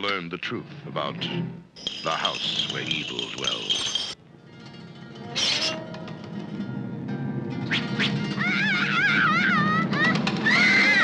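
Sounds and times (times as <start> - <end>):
girl screaming: 8.4 - 11.0.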